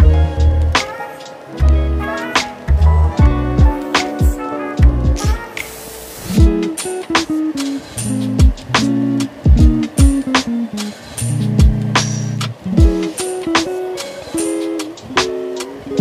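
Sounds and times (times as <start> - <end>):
deep drum hits: 0.0 - 0.9, 1.6 - 5.6, 6.4 - 7.3, 8.3 - 10.4, 11.6 - 13.1
background music with held chords: 0.0 - 16.0.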